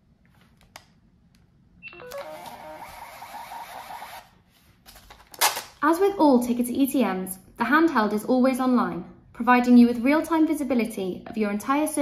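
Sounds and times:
ticket machine beep: 1.8s - 4.2s
ticket printer whirring: 1.9s - 4.3s.

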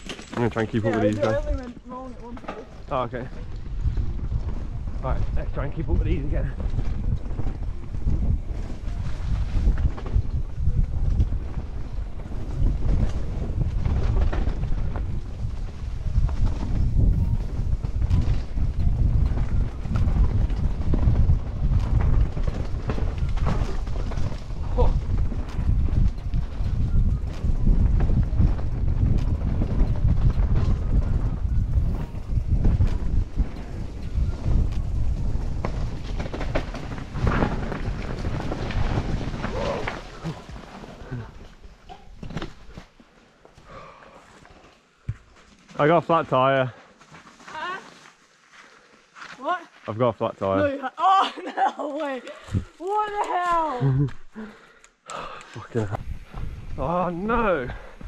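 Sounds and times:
wind buffeting microphone: 0.0s - 42.8s, 52.2s - 54.1s, 55.2s - 58.0s
bike rattling and knocking: 0.0s - 43.0s
tyres running over dirt: 0.0s - 48.5s.

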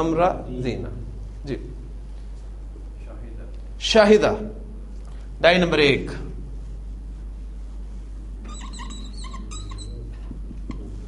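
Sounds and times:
steady low hum: 0.0s - 11.0s
marker squeaking on whiteboard: 8.4s - 11.0s.

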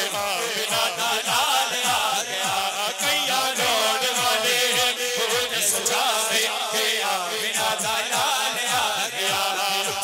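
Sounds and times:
chanted voices: 0.0s - 10.0s.

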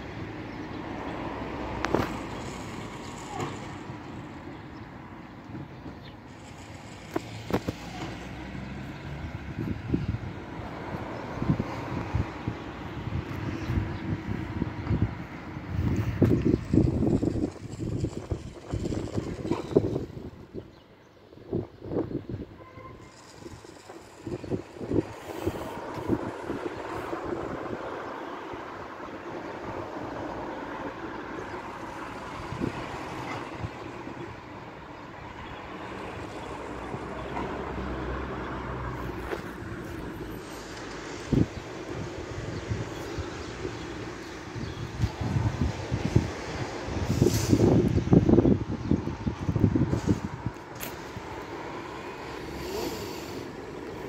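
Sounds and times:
passing traffic rushing: 0.0s - 54.0s.

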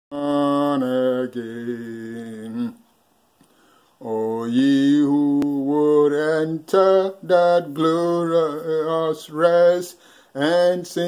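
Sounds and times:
man singing long notes: 0.1s - 2.8s, 4.0s - 11.0s.

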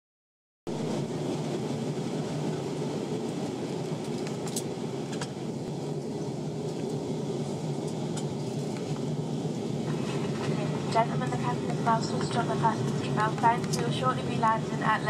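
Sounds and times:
airliner cabin rumble: 0.7s - 15.0s.

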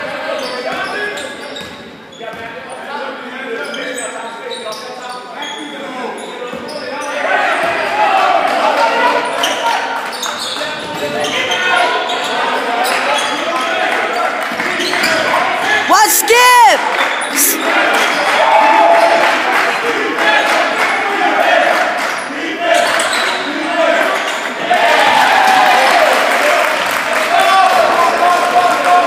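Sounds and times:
voices of players and spectators: 0.0s - 29.0s.

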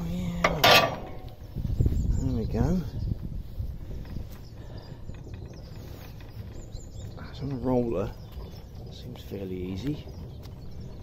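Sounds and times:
swing bridge rumble: 0.0s - 11.0s.

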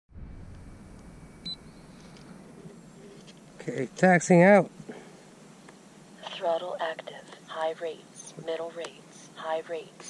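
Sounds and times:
low rumble: 0.1s - 5.4s
short high camera beep: 1.4s - 2.2s.

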